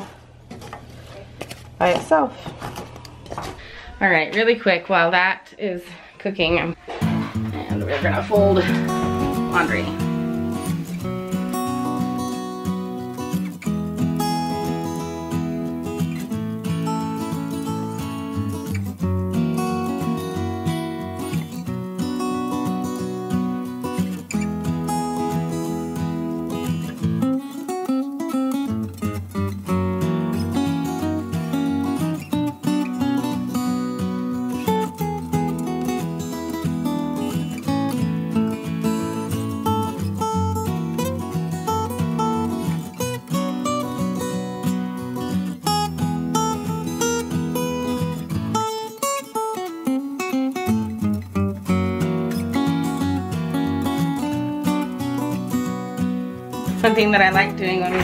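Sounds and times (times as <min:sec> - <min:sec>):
bass: 0:06.4 - 0:11.7
strummed acoustic guitar music: 0:06.4 - 0:58.0.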